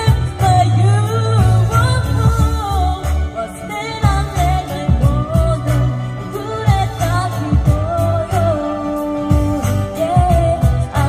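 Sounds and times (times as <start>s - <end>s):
music with a steady beat: 0.0s - 11.0s
woman singing into a microphone: 0.0s - 11.0s.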